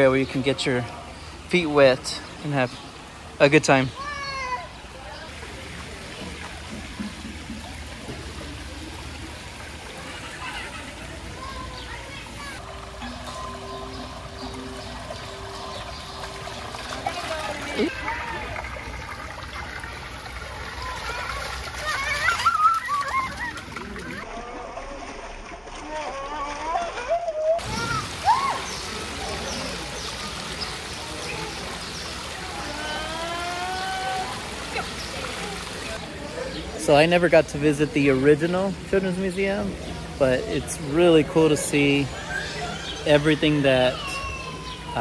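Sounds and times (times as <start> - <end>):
stream flowing over stones: 0.0 - 44.9
shallow running water: 0.0 - 45.0
children calling out: 3.9 - 4.9, 9.9 - 14.6, 20.6 - 24.4, 25.8 - 29.9, 30.5 - 36.0, 41.8 - 45.0
wading steps splashing: 4.0 - 36.1
soft background music: 12.6 - 17.9.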